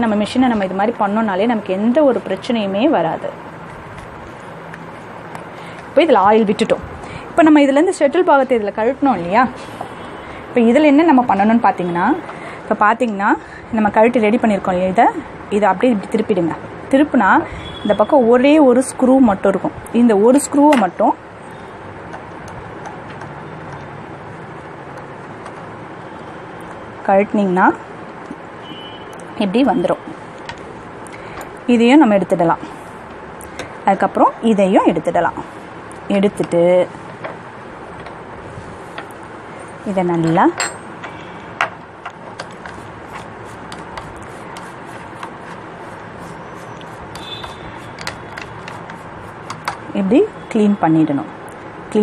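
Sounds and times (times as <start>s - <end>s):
toothbrush scrubbing metal: 42.7s - 49.8s
screwdriver clicking and scraping metal: 46.2s - 49.8s.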